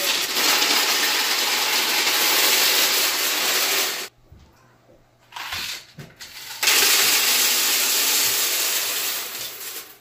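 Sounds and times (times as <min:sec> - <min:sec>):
candies pouring into canister: 0:00.0 - 0:04.1, 0:06.4 - 0:10.0.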